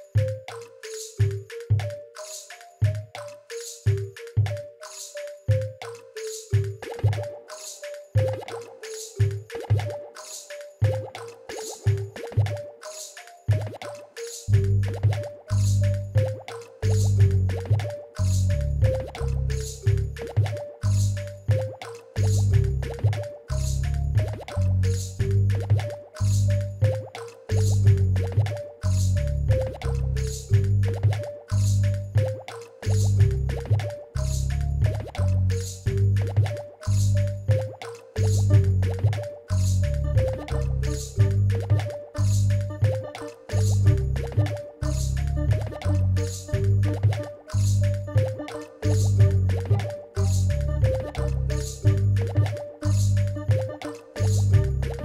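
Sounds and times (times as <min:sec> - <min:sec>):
crisp click beat: 0:00.0 - 0:55.0
plinking synth melody: 0:00.0 - 0:55.0
deep bass pulses: 0:14.5 - 0:16.2, 0:16.8 - 0:20.2, 0:22.2 - 0:26.9, 0:27.5 - 0:32.2, 0:32.9 - 0:37.6, 0:38.2 - 0:53.6, 0:54.2 - 0:55.0.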